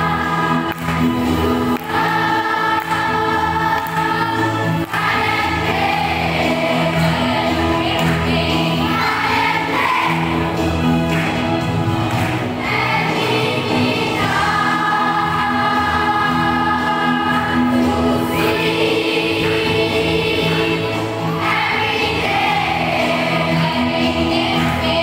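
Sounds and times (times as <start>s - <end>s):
children's choir singing: 0.0s - 25.0s.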